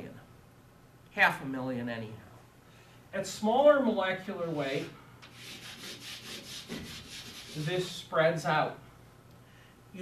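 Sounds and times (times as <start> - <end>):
chalk scratching on a blackboard: 4.4 - 8.1.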